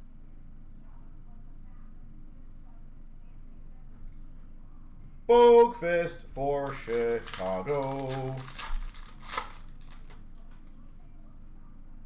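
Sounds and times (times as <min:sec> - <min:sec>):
wrapper crinkle: 0:06.6 - 0:10.3
faint handling noise: 0:06.6 - 0:11.0.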